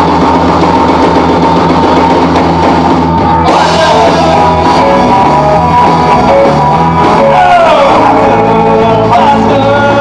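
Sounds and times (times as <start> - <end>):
rock band holding a chord: 0.0 - 10.0.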